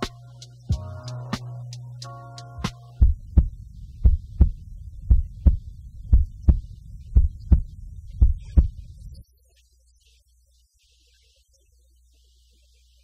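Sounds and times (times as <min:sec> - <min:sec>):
steady low rumble: 0:00.2 - 0:09.2
heartbeat thumps: 0:02.7 - 0:09.2.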